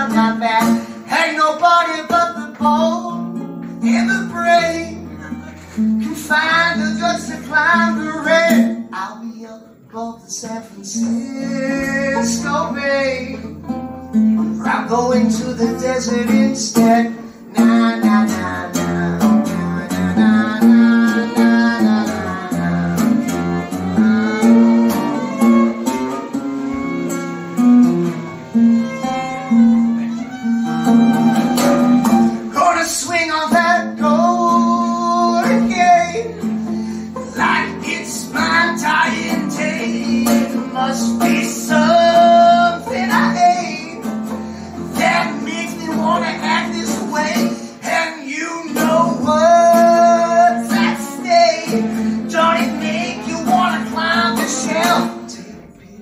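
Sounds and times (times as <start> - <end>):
fiddle melody: 0.0 - 9.0, 10.8 - 55.3
acoustic guitar: 0.0 - 56.0.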